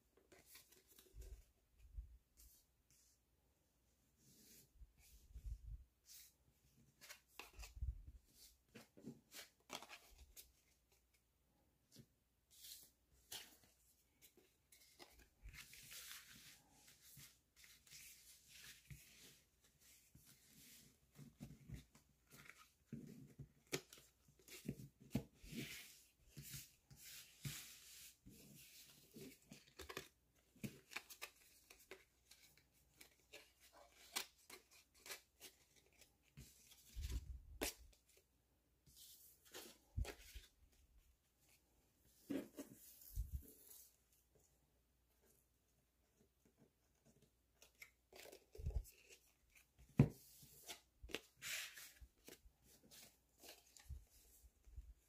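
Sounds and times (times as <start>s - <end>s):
cards rustling and tapping: 28.6s - 38.3s.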